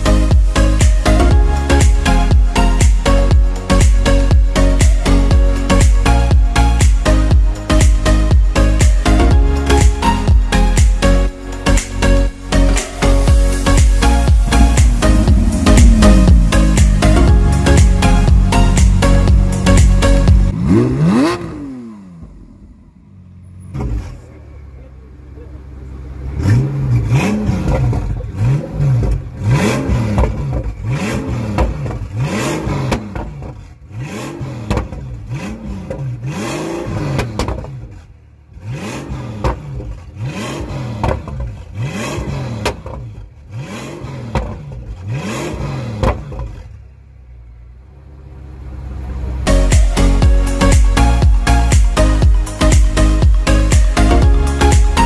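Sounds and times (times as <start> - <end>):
background music with beat: 0.0 - 21.3, 49.5 - 55.0
car engine revving: 0.0 - 55.0.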